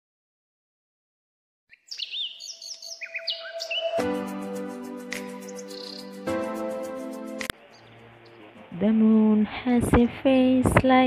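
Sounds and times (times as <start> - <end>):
birds chirping: 1.7 - 6.8, 7.6 - 8.8
music with sustained chords: 3.1 - 7.5.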